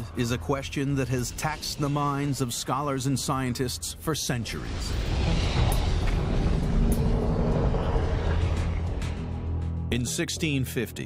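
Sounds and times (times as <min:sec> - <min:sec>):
deep rumble of molten lava: 0:04.6 - 0:09.6.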